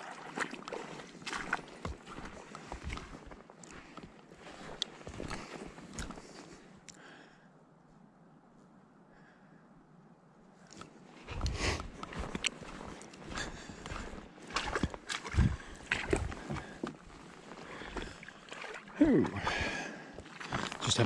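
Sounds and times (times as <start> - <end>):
footsteps crunching on sand: 0.0 - 6.7, 10.7 - 18.8.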